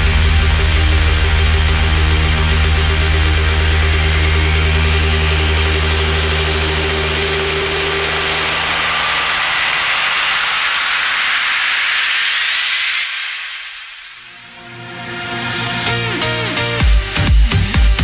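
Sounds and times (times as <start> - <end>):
rising white-noise sweep: 0.0 - 16.4.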